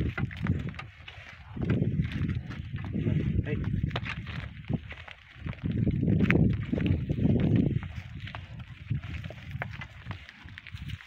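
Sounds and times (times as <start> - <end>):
hoofbeats on dirt track: 0.0 - 11.0.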